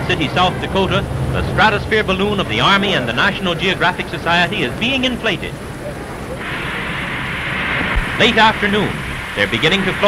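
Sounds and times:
gas hissing through hoses: 6.3 - 10.0.

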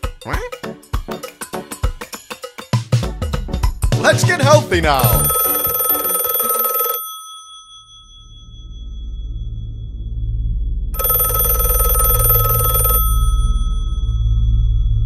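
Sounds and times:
telephone bell ringing: 5.0 - 8.6, 11.0 - 14.6
low droning hum: 8.5 - 11.0, 13.7 - 15.0.

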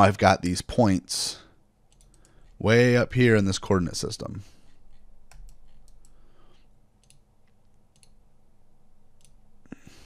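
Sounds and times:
low steady hum: 0.0 - 10.0
computer mouse clicks: 1.9 - 2.6, 4.6 - 8.2, 9.1 - 9.4.

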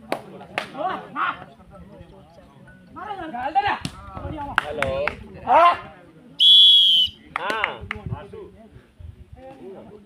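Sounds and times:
referee's whistle blast: 6.4 - 7.2.

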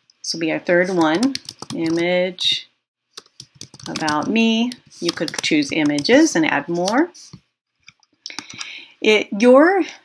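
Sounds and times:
computer mouse clicks: 7.8 - 8.8.

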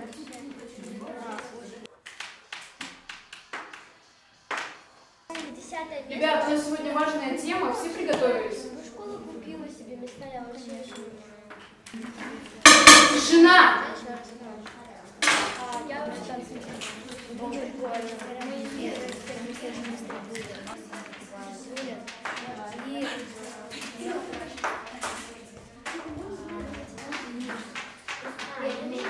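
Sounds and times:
voices in a classroom: 0.0 - 29.0.

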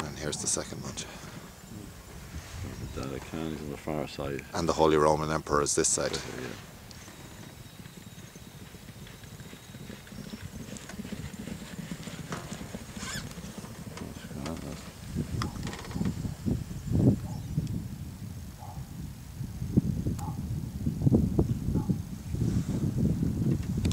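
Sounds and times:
horse hoofbeats cantering: 0.0 - 2.2, 6.6 - 16.6
wind buffeting microphone: 0.0 - 23.9.

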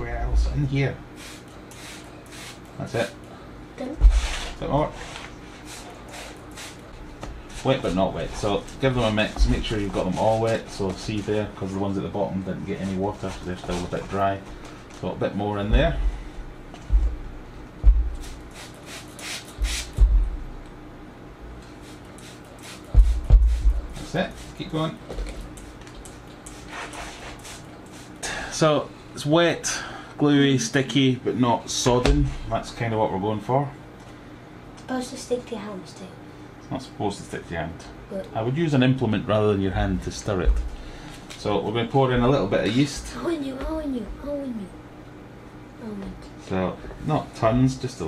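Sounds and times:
spray bottle hissing sprays: 1.2 - 2.7, 5.6 - 6.8, 18.1 - 20.0, 21.7 - 24.6, 25.5 - 28.2.

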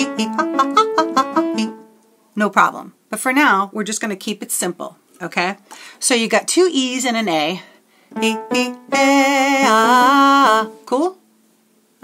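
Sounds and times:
woman singing fast vocal run: 8.2 - 11.2.

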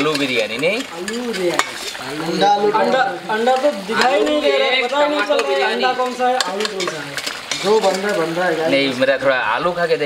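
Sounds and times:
spatula clicking against pan: 0.0 - 2.0, 5.3 - 8.2
metal spatula stirring: 0.0 - 9.0
curry sizzling in a pan: 0.0 - 10.0.

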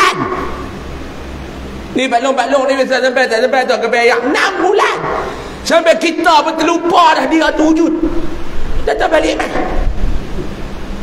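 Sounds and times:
low steady hum: 0.0 - 11.0
man lecturing: 1.9 - 8.2, 8.8 - 9.8.

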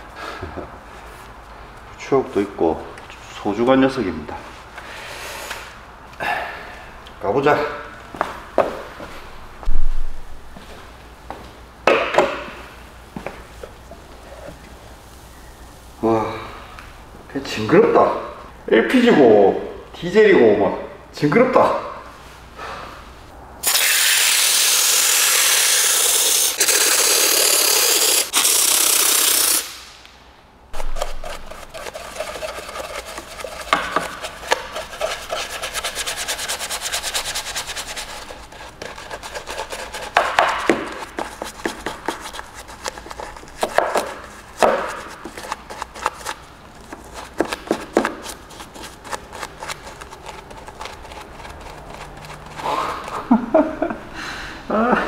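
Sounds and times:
spray hiss: 23.6 - 30.0
brush scrubbing plastic: 30.8 - 53.4.

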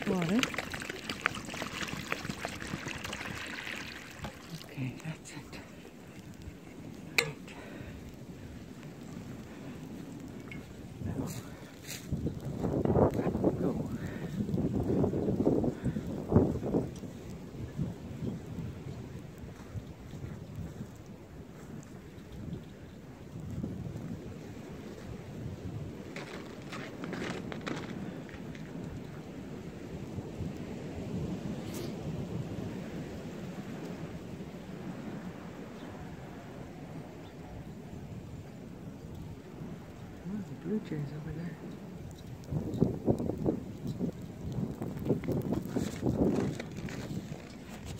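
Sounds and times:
wind on microphone: 0.0 - 47.9
footsteps crunching in snow: 10.0 - 13.4, 26.1 - 28.7, 45.6 - 47.9.

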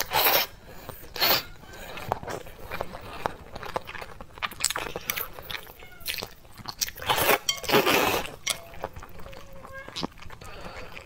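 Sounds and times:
slurping noodles: 0.0 - 3.5
wet chewing and mouth clicks: 0.0 - 11.0.

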